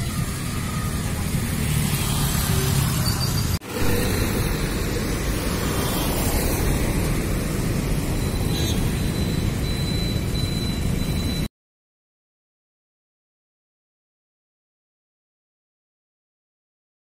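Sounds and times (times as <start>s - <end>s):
road traffic rumble: 0.0s - 11.5s.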